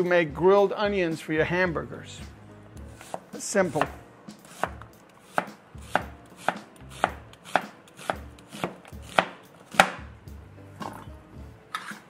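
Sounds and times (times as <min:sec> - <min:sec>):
knife slicing onion: 0:02.9 - 0:10.0.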